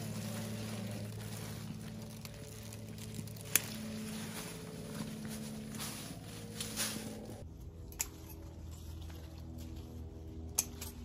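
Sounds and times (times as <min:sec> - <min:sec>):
leaves and branches rustling: 0:00.0 - 0:11.0
steady low hum: 0:00.0 - 0:11.0
hand clippers snipping stem: 0:10.5 - 0:11.0.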